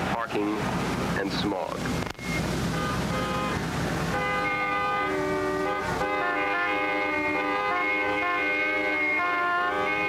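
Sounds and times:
freeway traffic rumble: 0.0s - 10.0s
car horns honking: 2.2s - 10.0s.

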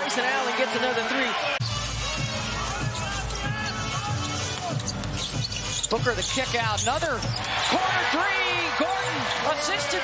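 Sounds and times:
arena crowd noise: 0.0s - 4.9s, 6.1s - 10.0s.

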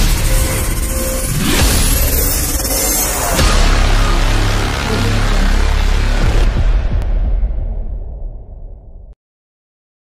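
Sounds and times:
cinematic intro music: 0.0s - 9.2s
low impact hit: 1.4s - 9.2s.

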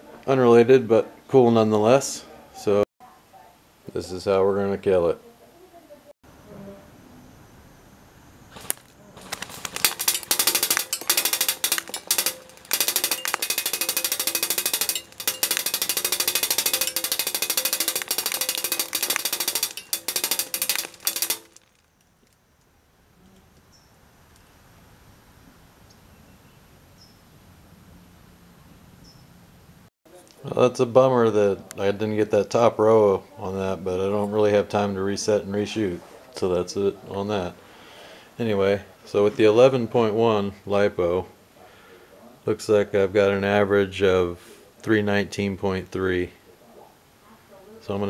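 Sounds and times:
airsoft gun firing full-auto: 9.4s - 21.7s.

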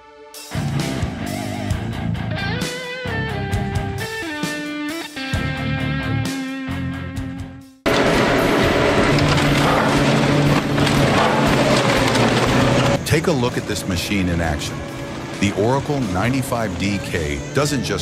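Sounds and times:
rock music with electric guitar: 0.0s - 18.0s
industrial shredder grinding metal: 7.9s - 18.0s.

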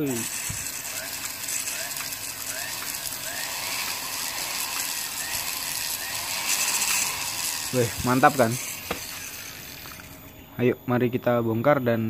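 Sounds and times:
rotary tool running: 0.0s - 10.4s.

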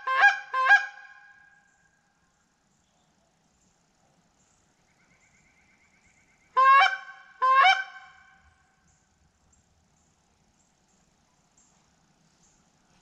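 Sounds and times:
goose-like honks: 0.0s - 1.5s, 6.5s - 8.4s.

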